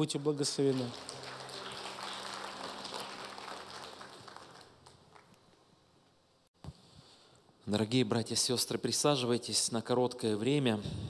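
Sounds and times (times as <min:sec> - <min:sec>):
congregation applauding: 0:00.0 - 0:05.5.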